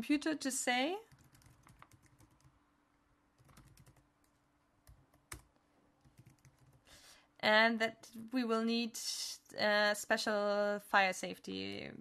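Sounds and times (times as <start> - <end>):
typing on computer keyboard: 1.1 - 2.6, 3.4 - 6.9.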